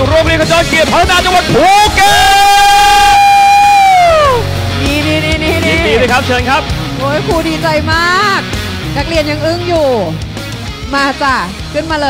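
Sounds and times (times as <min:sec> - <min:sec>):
amplified announcer shouting: 0:00.0 - 0:07.9.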